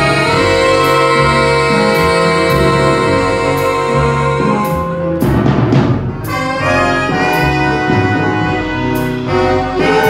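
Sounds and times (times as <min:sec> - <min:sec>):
horn section playing held chords: 0:00.0 - 0:10.0.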